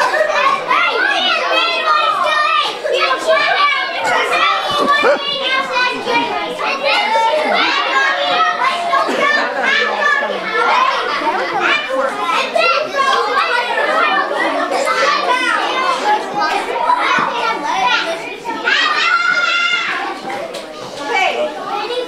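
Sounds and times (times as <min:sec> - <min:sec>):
children chattering: 0:00.0 - 0:22.0.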